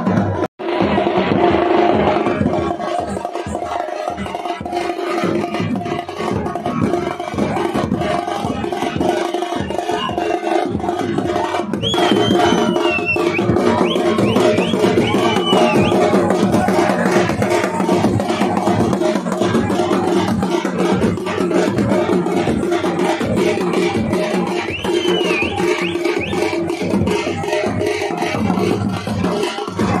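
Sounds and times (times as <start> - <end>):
fast festival drumming: 0.0 - 30.0
shrill sliding whistle: 9.7 - 10.3, 11.8 - 16.1, 24.6 - 26.6.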